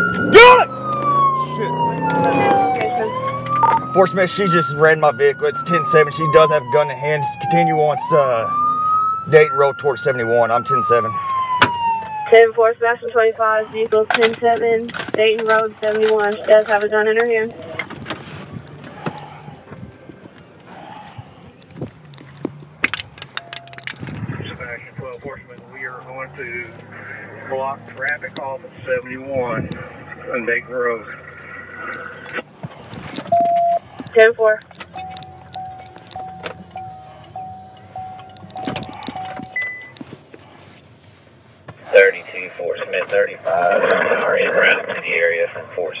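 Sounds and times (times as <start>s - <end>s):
idling engine hum: 0.0s - 46.0s
gear clicking and rattling: 32.8s - 40.0s.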